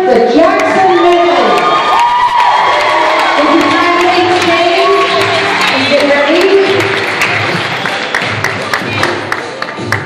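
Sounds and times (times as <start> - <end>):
children screaming and cheering: 0.7 - 5.7.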